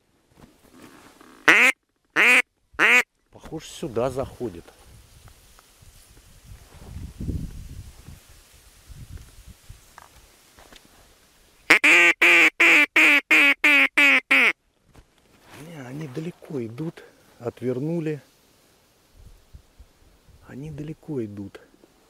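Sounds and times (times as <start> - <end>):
duck call quacks: 1.4 - 3.1, 11.7 - 14.6.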